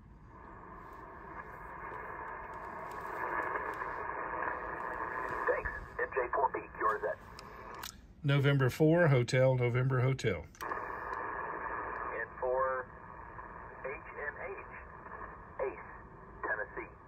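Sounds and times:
radio static hiss: 0.0 - 7.8, 10.6 - 17.0
radio voice through static: 1.2 - 7.3, 10.7 - 17.0.

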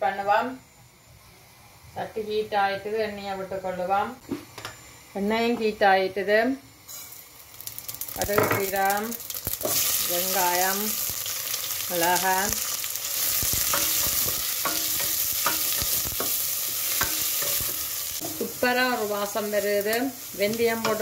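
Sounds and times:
oil sizzling in a pot: 6.7 - 21.0.

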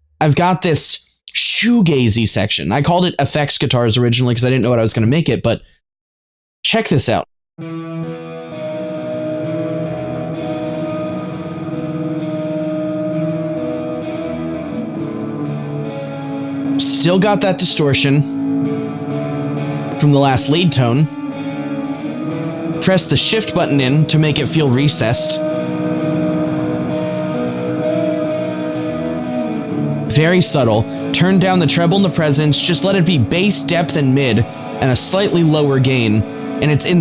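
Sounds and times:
electric guitar chords with reverb: 7.6 - 37.0.

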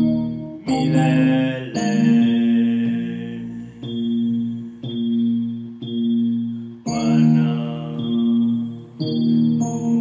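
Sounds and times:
electronic keyboard chords: 0.0 - 10.0.

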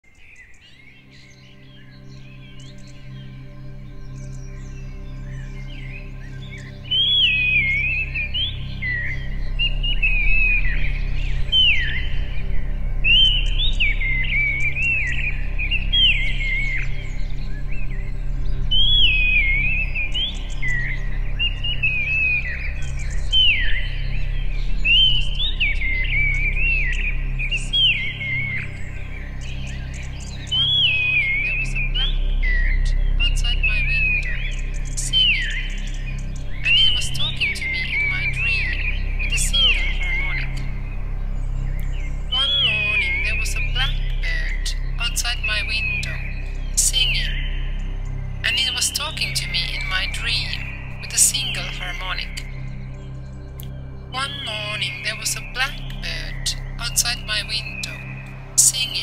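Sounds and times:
synthetic whistled birdsong: 0.0 - 59.0
low steady hum: 0.6 - 59.0.

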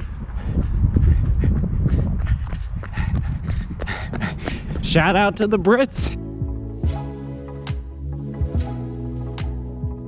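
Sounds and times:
running footsteps on wet pavement: 0.0 - 5.8
wind rumble on microphone: 0.0 - 6.0.

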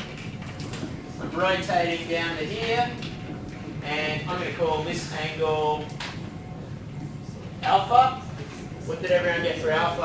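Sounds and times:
man talking: 1.2 - 3.0, 3.8 - 6.0, 7.6 - 10.0.

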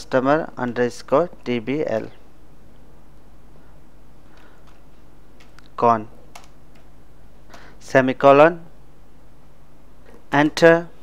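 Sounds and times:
computer keyboard typing: 5.4 - 5.7, 6.3 - 6.9.

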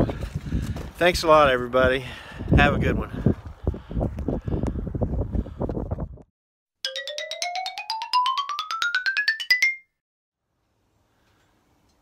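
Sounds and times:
wind buffeting microphone: 0.0 - 6.3
rising xylophone chime notes: 6.8 - 10.0.

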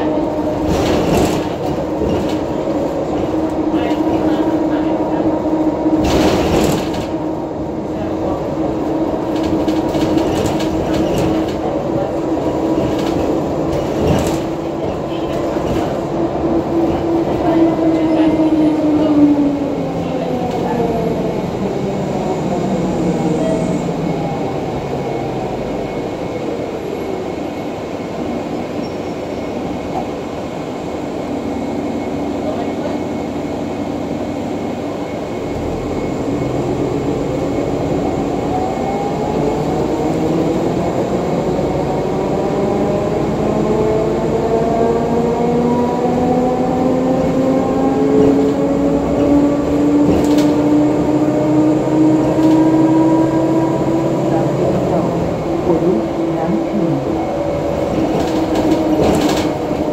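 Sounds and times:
bus drive whine: 0.0 - 59.9.

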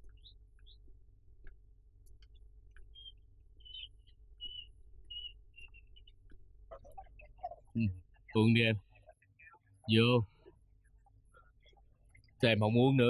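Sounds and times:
soft clicks: 0.0 - 3.3
low steady hum: 0.0 - 13.0.

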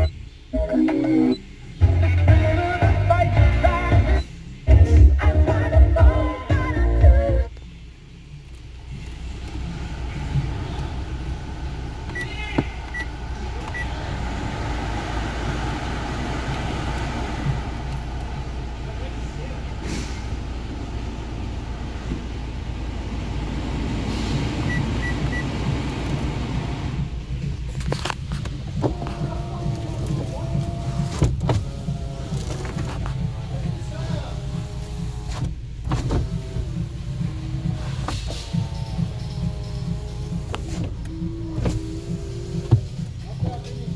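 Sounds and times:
car blower fan running: 7.5 - 43.9.

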